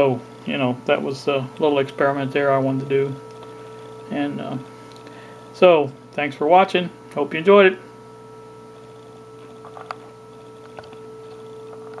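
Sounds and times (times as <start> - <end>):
audio test tone through speaker: 0.0 - 6.6, 7.2 - 12.0.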